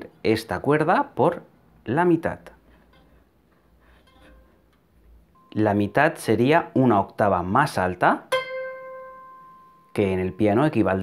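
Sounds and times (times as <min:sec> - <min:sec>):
faint steel string tone: 0:02.9 - 0:05.9, 0:08.3 - 0:11.0.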